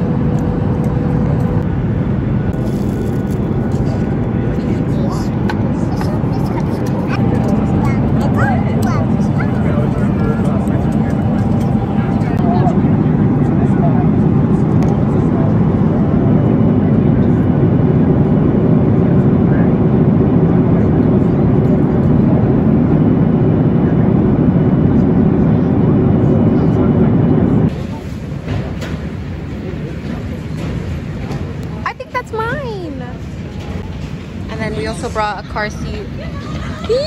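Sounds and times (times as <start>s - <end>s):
jet cabin engine rumble: 0.0s - 37.0s.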